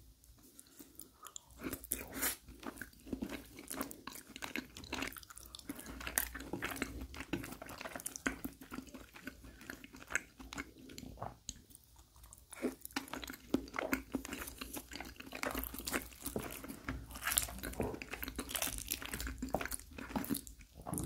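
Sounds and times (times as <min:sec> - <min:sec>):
close-miked chewing: 0:00.3 - 0:21.0.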